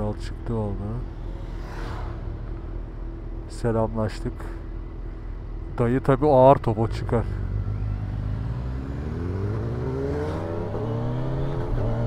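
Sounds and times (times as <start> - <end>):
motorcycle passing by: 1.0 - 2.9, 7.5 - 12.0.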